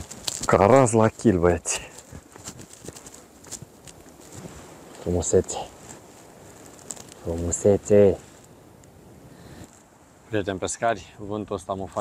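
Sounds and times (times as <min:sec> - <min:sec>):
footsteps on grass: 0:00.0 - 0:08.6.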